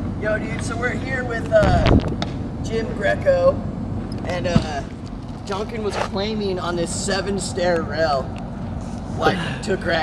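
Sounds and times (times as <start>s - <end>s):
people talking indistinctly: 0.2s - 10.0s.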